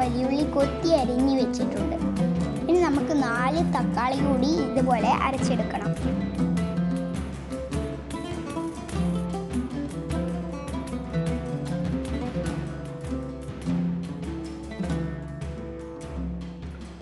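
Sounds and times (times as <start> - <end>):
plucked string melody: 0.0 - 17.0.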